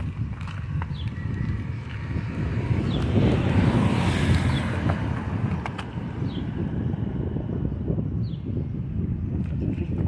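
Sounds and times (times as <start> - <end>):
wind buffeting microphone: 0.0 - 10.0
car passing: 1.1 - 8.0.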